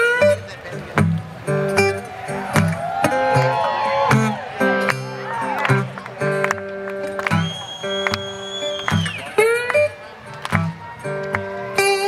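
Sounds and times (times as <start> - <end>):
resonator guitar fingerstyle: 0.0 - 12.0.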